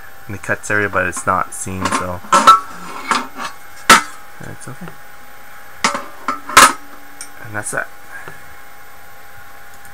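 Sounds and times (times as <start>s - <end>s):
metal tubing clanking: 0.9s - 4.2s, 5.8s - 6.9s.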